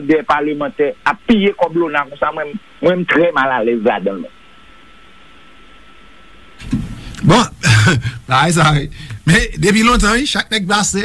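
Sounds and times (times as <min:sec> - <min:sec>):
man speaking: 0:00.0 - 0:04.3, 0:07.2 - 0:11.0
low hiss: 0:00.0 - 0:11.0.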